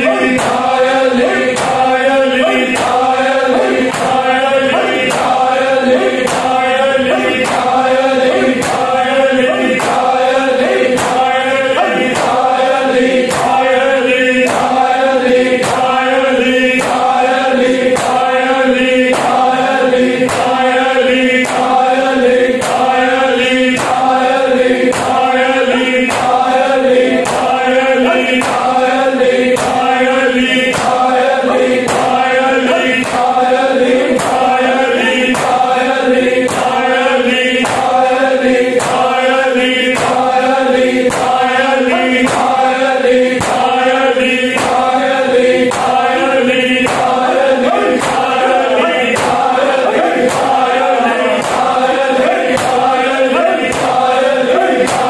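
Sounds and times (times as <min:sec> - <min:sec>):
men chanting in unison: 0:00.0 - 0:55.0
hands slapping chests: 0:43.4 - 0:43.8.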